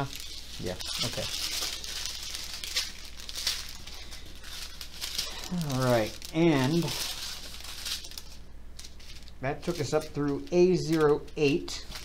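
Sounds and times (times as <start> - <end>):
plastic packets crinkling: 0.0 - 12.0.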